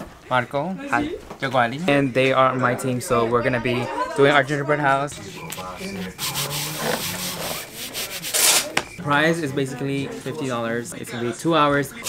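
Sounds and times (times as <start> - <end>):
hand rubbing on cardboard: 5.2 - 8.7.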